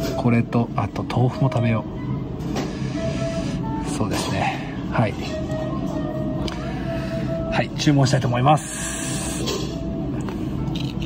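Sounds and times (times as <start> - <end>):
restaurant background noise: 0.0 - 11.0.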